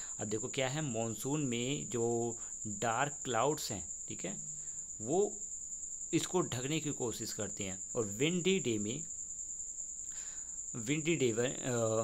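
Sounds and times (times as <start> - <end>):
person speaking: 6.2 - 9.1, 10.8 - 12.0.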